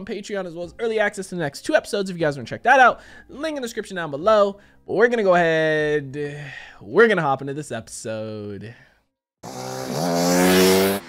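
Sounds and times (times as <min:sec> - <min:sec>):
dirt bike engine revving: 0:09.4 - 0:11.0.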